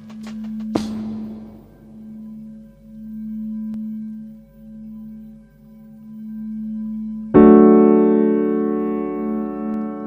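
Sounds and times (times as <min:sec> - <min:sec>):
meditation music of held tones: 0:00.0 - 0:10.0.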